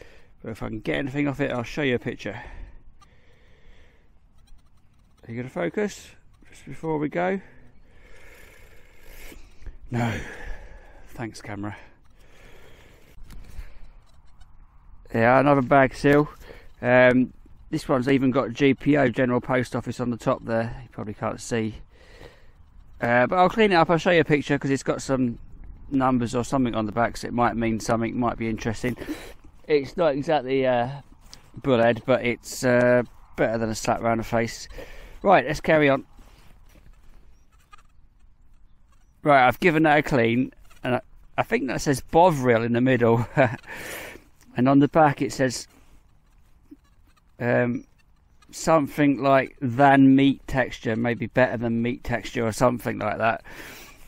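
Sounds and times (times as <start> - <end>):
gloved fingers rubbing coin: 4.2 - 5.5, 12.0 - 14.6, 34.2 - 44.1, 45.2 - 54.0.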